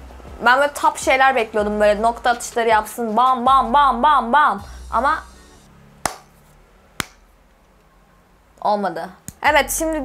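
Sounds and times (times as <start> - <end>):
finger snaps: 7.0 - 7.3, 9.2 - 9.4.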